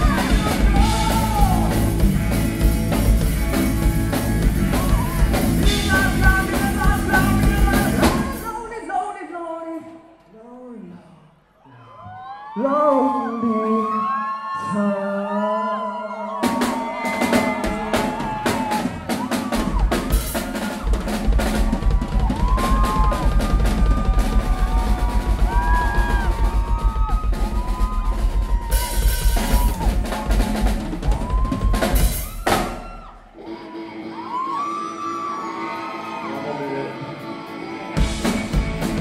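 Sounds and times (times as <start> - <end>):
heavy bass drum: 0.0 - 8.5, 16.5 - 33.0, 38.0 - 39.0
live rock band playing: 0.0 - 8.7, 16.4 - 39.0.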